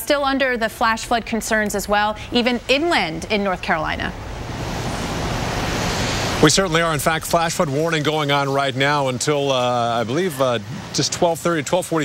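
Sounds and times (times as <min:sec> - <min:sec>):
low rumble: 0:00.0 - 0:09.1
wind rushing over microphone: 0:00.6 - 0:08.4.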